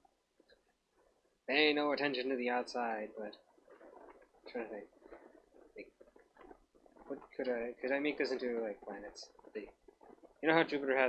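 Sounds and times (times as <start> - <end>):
stylus scratching drawing tablet: 1.0 - 11.0.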